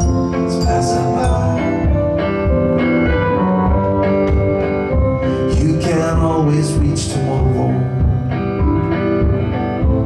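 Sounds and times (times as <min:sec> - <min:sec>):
guitar sustained notes: 0:00.0 - 0:10.0
keyboard sustained notes: 0:00.0 - 0:10.0
steady drum beat: 0:00.0 - 0:10.0.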